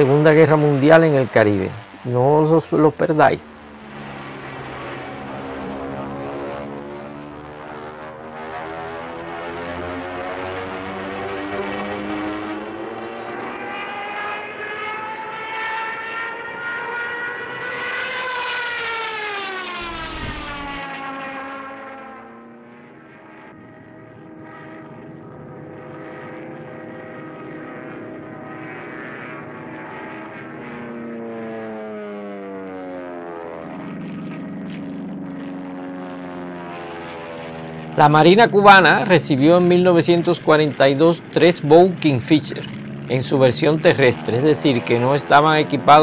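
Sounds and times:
propeller aircraft engine droning: 0.0 - 46.0.

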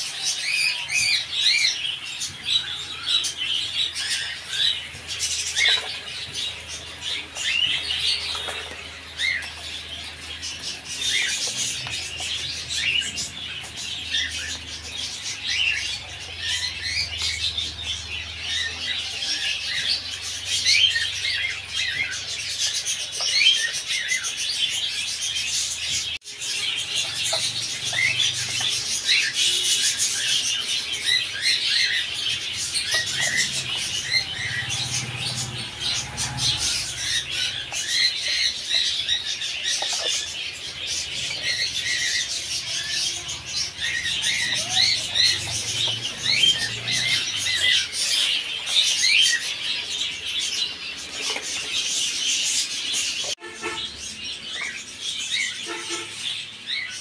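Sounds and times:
caged birds chirping: 0.0 - 57.0.

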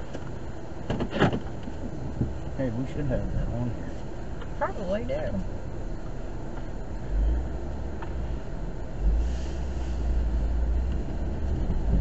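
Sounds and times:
car engine and tyre rumble: 0.0 - 12.0
deep low rumble: 5.4 - 12.0.

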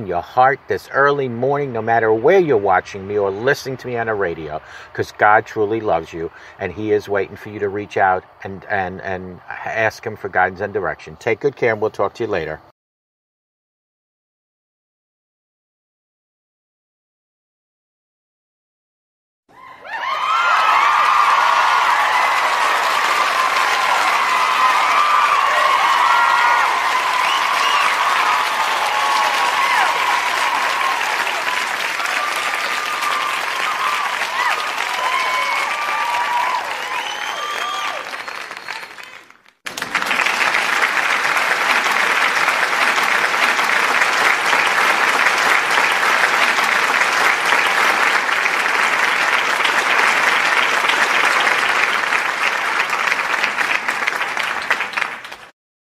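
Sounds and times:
audience applause: 19.8 - 55.5.

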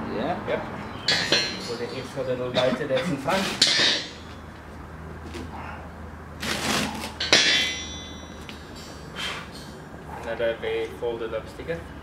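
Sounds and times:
metal spring clanging on concrete: 0.9 - 4.5, 7.1 - 10.4.

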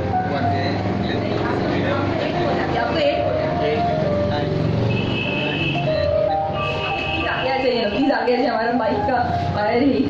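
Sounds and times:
background music: 0.0 - 10.0
people chattering: 0.0 - 10.0.

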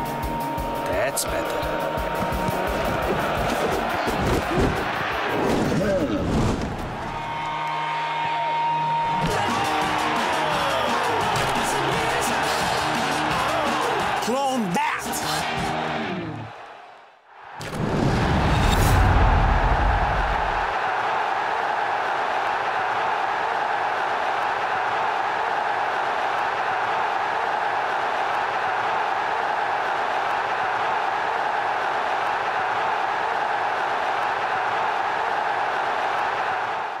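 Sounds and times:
stadium crowd roaring: 0.0 - 37.0
deep boom: 17.6 - 20.6.

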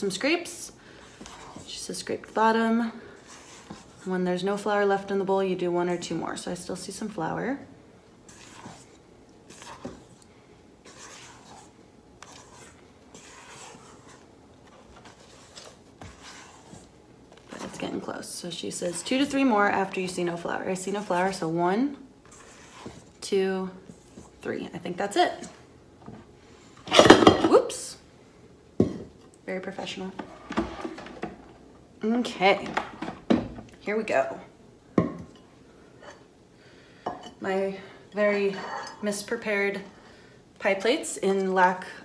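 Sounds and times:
spatula scraping metal mixing bowl: 0.4 - 5.1, 8.2 - 10.2, 10.8 - 21.6, 22.2 - 24.4.

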